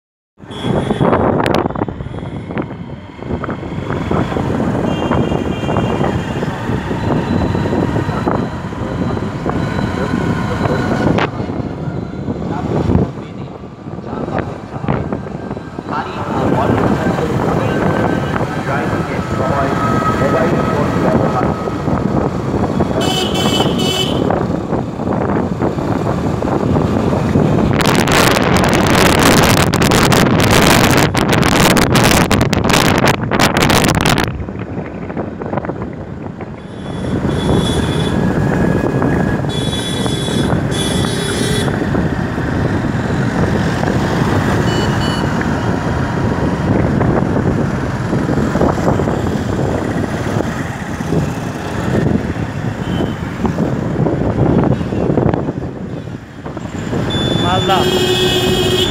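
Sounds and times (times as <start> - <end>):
vehicle horns honking: 0.4 - 2.5, 4.8 - 6.4, 22.8 - 24.4, 36.6 - 38.3, 39.5 - 41.8, 44.6 - 45.4, 52.8 - 53.2, 57.0 - 58.9
road traffic from moving vehicle: 0.4 - 58.9
wind buffeting microphone: 0.4 - 58.9.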